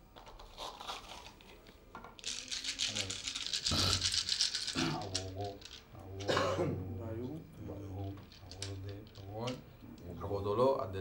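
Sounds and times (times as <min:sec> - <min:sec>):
seeds rattling in hands: 0:02.2 - 0:05.9.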